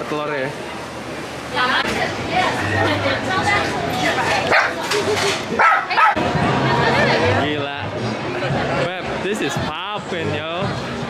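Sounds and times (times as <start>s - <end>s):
people's voices: 0.0s - 11.0s
small dog barking: 4.5s - 4.8s, 5.6s - 6.2s.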